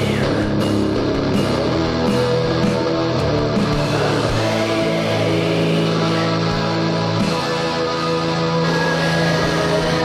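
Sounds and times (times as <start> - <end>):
distorted guitar chords: 0.0 - 10.0.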